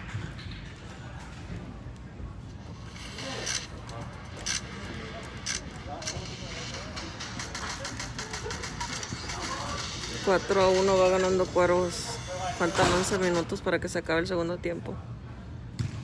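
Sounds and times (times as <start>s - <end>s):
steady background noise: 0.0s - 16.0s.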